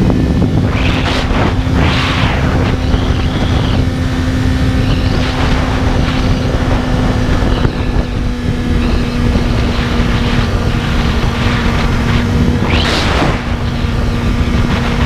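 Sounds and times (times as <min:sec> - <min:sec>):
motorcycle engine cruising: 0:00.0 - 0:15.0
wind buffeting on microphone: 0:00.0 - 0:15.0.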